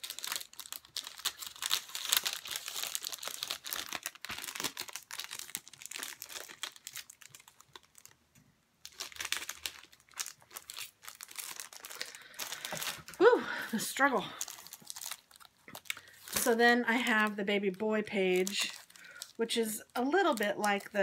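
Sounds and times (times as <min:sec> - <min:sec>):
paper packaging crinkling: 0:00.0 - 0:08.2, 0:08.8 - 0:21.0.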